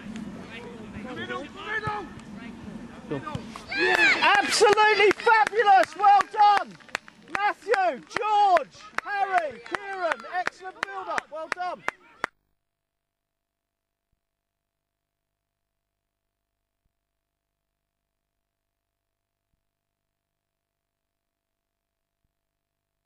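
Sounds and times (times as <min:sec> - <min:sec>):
spectators yelling: 0:03.6 - 0:06.7.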